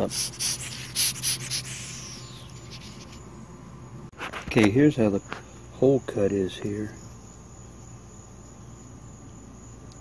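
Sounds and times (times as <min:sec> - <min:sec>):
powder shaken in plastic bottle: 0:00.0 - 0:03.2.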